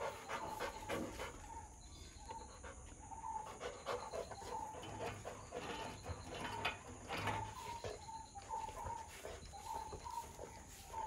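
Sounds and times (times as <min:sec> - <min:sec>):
dog panting: 0:00.0 - 0:11.0.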